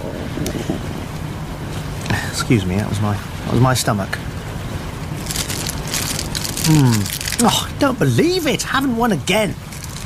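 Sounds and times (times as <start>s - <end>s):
sea noise: 0.0s - 10.0s
wind: 0.0s - 10.0s.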